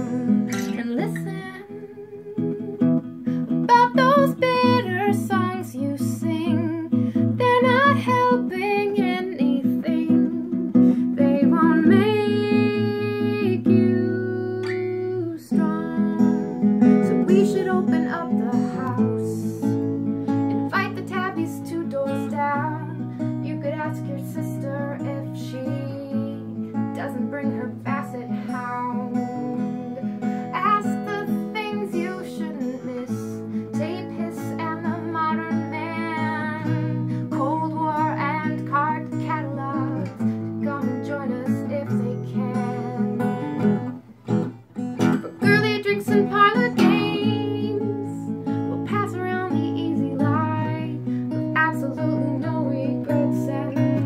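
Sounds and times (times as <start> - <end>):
woman singing: 0.0 - 44.0, 45.0 - 54.0
acoustic guitar strumming: 0.0 - 54.0.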